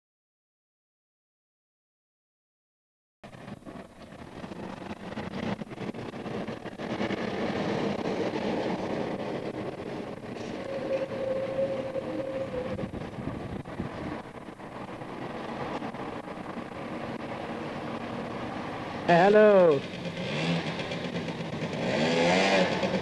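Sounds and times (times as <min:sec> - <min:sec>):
street traffic rumble: 0:03.2 - 0:23.0.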